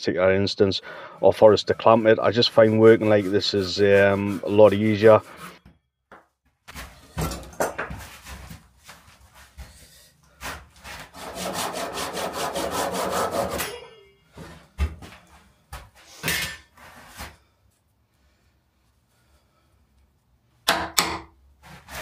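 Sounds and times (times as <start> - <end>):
hand saw cutting wood: 10.4 - 13.8, 21.6 - 22.0.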